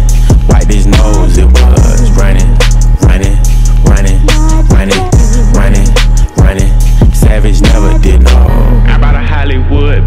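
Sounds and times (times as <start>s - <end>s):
trap beat with deep bass: 0.0s - 10.0s.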